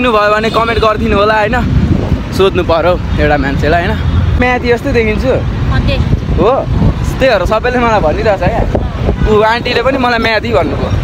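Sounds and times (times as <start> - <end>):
young man talking: 0.0 - 5.5, 6.3 - 11.0.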